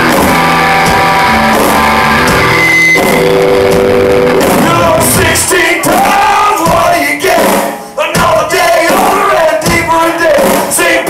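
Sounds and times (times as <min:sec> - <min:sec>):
electric guitar: 0:00.0 - 0:05.6
bass guitar: 0:00.0 - 0:07.4
drum kit: 0:00.0 - 0:11.0
male vocals: 0:04.4 - 0:11.0.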